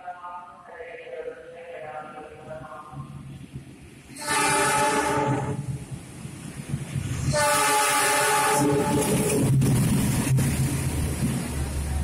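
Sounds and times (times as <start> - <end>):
locomotive air horn blasts: 4.2 - 5.6, 7.3 - 9.4.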